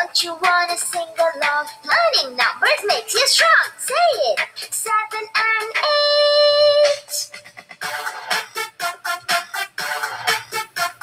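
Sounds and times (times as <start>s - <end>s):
upbeat electronic children's song: 0.0s - 11.0s.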